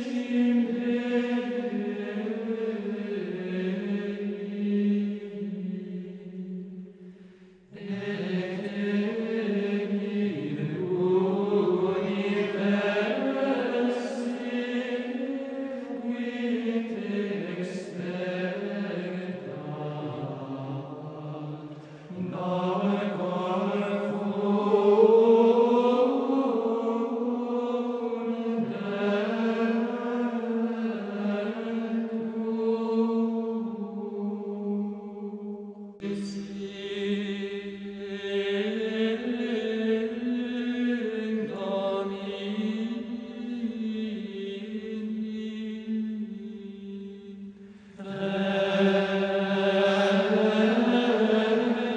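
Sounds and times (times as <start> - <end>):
voices chanting together: 0.0 - 51.9.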